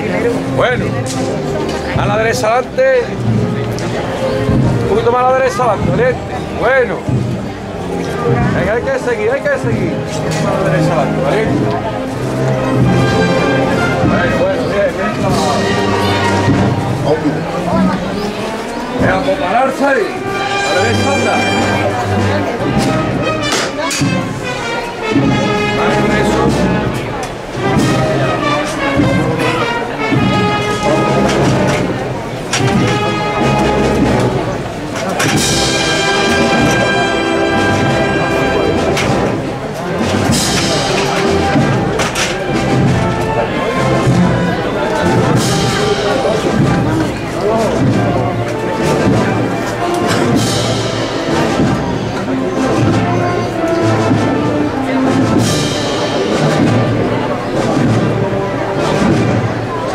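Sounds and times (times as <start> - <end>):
brass band playing slow march: 0.0 - 59.9.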